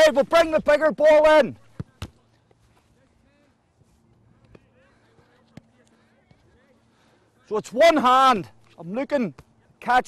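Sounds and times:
distant voices of players: 0:00.0 - 0:09.9
knocks of footballs handled: 0:01.6 - 0:02.2.

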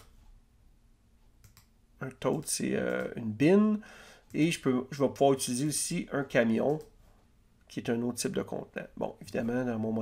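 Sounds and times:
computer mouse clicks: 0:01.4 - 0:03.2.

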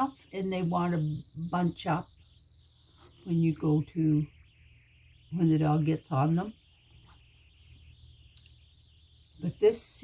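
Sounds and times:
faint steady hiss: 0:00.0 - 0:10.0.

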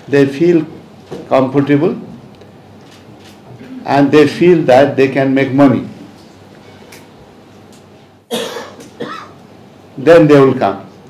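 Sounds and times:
man coughing: 0:08.3 - 0:09.4.

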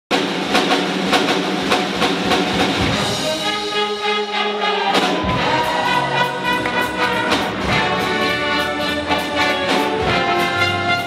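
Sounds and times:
drum kit driving beat: 0:00.1 - 0:03.9, 0:04.8 - 0:11.0
swing big band playing: 0:00.1 - 0:11.0.

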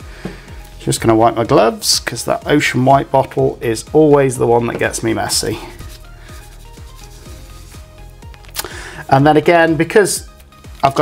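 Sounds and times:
quiet background music: 0:00.0 - 0:11.0
paper towel rubbing gloved hands: 0:04.6 - 0:08.6.

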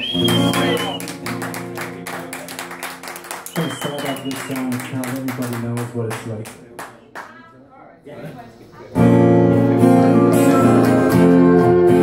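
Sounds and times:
electric guitar: 0:08.9 - 0:12.0
acoustic guitar strumming: 0:09.0 - 0:12.0.

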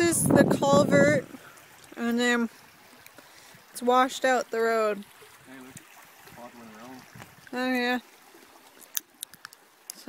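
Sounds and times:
meltwater rushing through culvert: 0:00.0 - 0:10.0.

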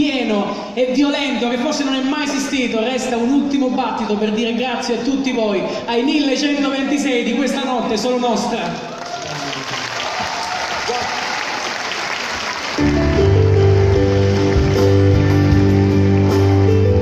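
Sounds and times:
audience clapping and cheering: 0:08.6 - 0:17.0
live band playing: 0:12.6 - 0:17.0.

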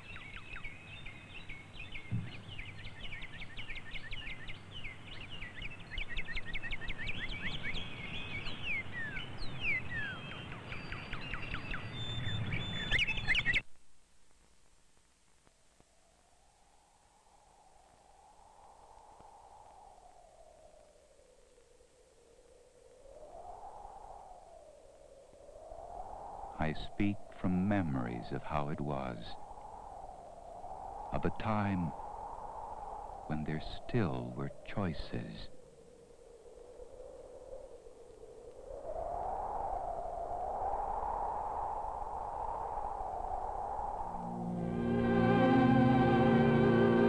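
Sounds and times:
faint steady hum: 0:13.5 - 0:47.0
faint hollow whooshing wind: 0:22.2 - 0:47.0
slowly wavering electronic tone: 0:44.1 - 0:47.0.

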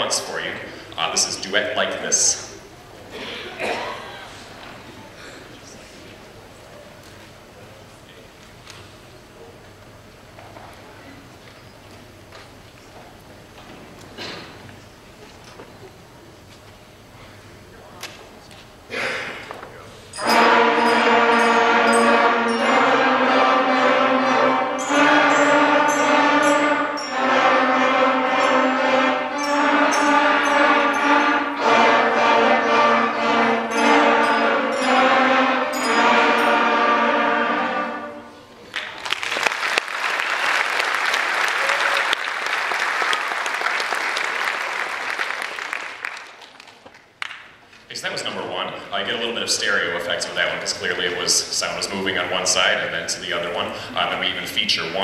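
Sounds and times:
concert band playing: 0:20.2 - 0:38.5
audience applause: 0:38.7 - 0:47.4.

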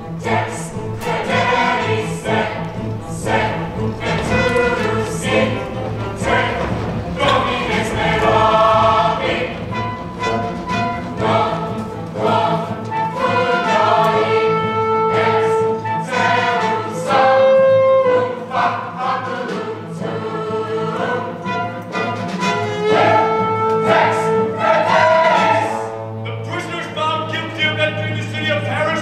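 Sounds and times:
steady low pulse: 0:00.0 - 0:13.6
chorus singing: 0:00.0 - 0:29.0
orchestra accompaniment: 0:00.0 - 0:29.0.

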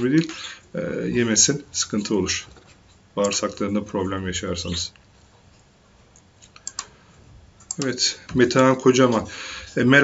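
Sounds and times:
man speaking: 0:00.0 - 0:02.6, 0:03.2 - 0:05.0, 0:07.8 - 0:10.0
computer clicks: 0:06.2 - 0:07.0, 0:07.6 - 0:08.0.

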